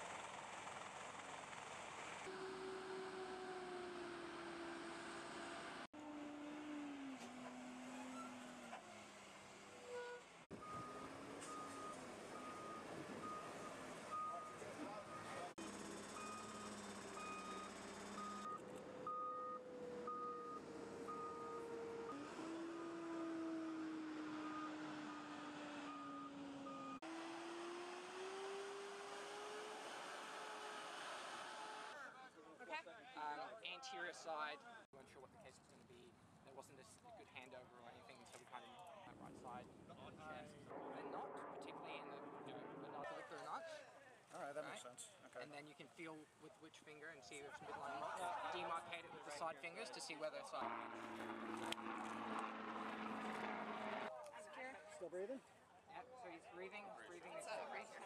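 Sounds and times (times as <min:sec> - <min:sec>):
diesel truck engines running: 0:00.3 - 0:27.0, 0:50.6 - 0:54.1
back-up alarm beeping: 0:10.6 - 0:15.4, 0:16.1 - 0:22.2.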